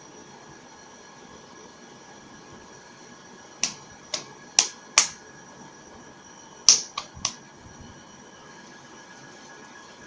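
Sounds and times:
hands slapping: 3.6 - 5.2, 6.7 - 7.4.

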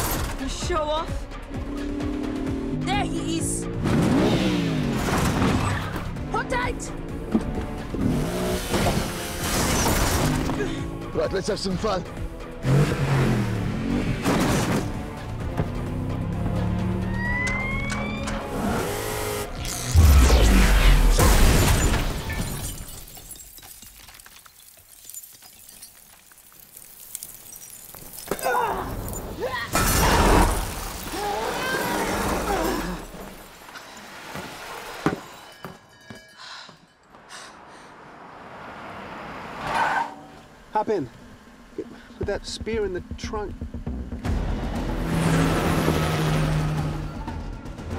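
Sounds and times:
action film score music: 0.0 - 22.0, 40.7 - 47.9
glass shattering: 21.1 - 31.3.

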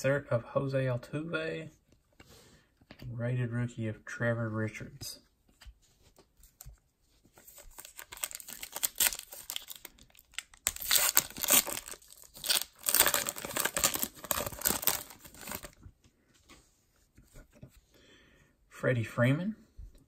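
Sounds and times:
wrapper tearing and crinkling: 7.4 - 15.8.

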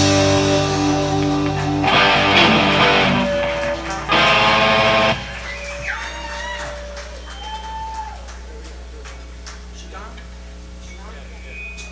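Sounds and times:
rock band final chord: 0.0 - 5.9
amplifier hum: 0.0 - 8.1.

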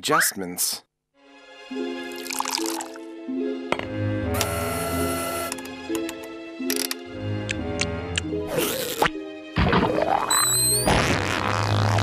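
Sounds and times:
background music: 1.2 - 12.0.

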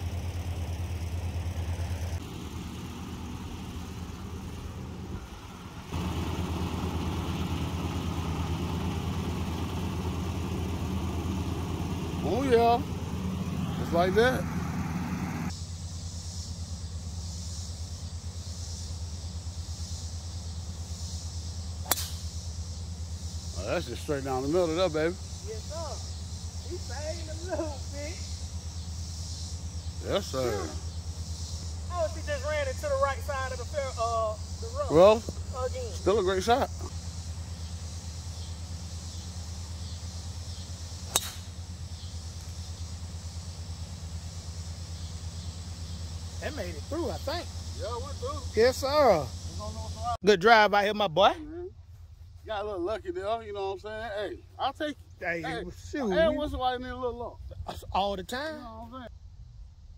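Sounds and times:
low engine idle: 0.0 - 59.4
steady low hum: 0.0 - 59.9
golf club striking ball: 21.8 - 22.3, 41.0 - 41.6.

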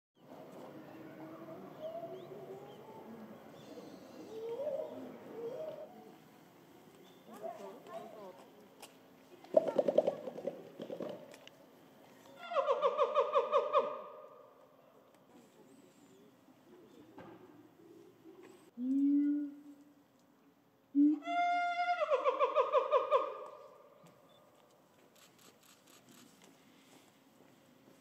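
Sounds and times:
people's voices: 0.4 - 10.8.

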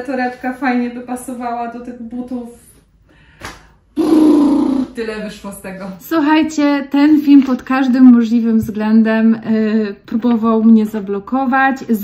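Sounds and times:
woman's wordless vocal: 4.0 - 5.0.

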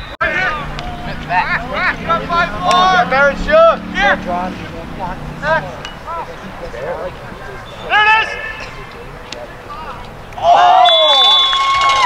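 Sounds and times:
people shouting short calls: 0.2 - 6.8, 7.5 - 8.8.

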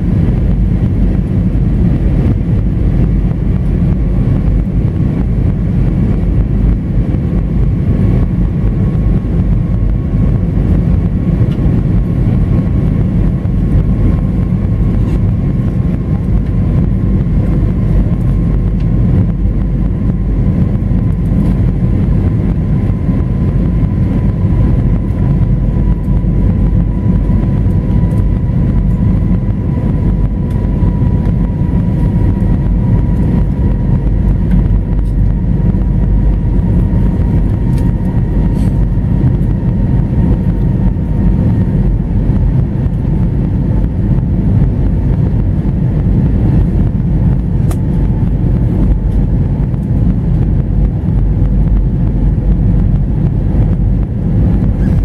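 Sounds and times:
faint whine: 0.0 - 55.0
jet engine and airflow rumble: 0.0 - 55.0.

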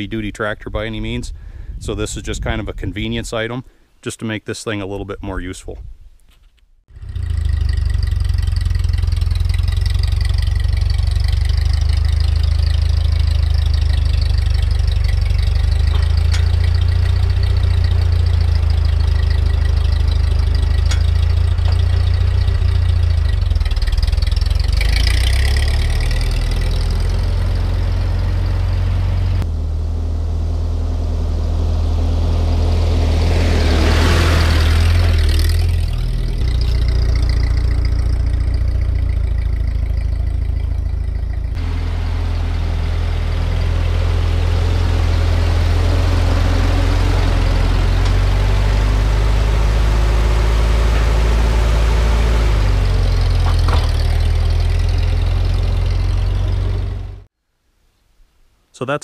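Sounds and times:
tractor engine droning: 0.0 - 4.0, 6.9 - 57.3.

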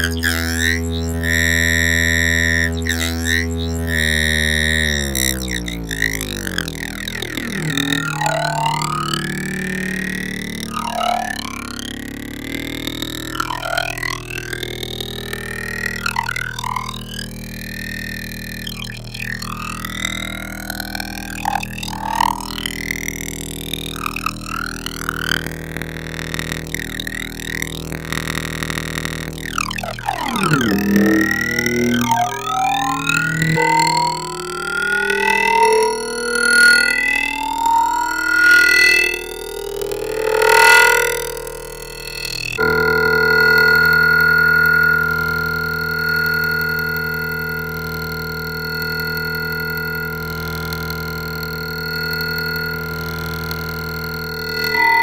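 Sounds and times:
buzzy synthesizer tone: 0.0 - 55.0.

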